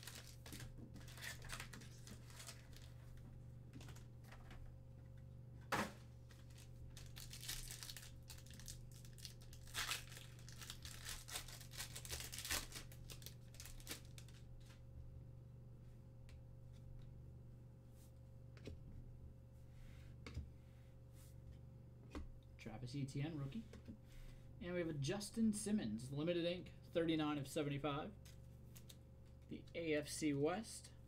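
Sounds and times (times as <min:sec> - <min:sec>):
foil wrapper tearing and crinkling: 0:00.0 - 0:02.9, 0:06.3 - 0:14.4
cards rustling and clicking: 0:00.0 - 0:03.0, 0:28.2 - 0:29.5
low electrical hum: 0:00.0 - 0:31.0.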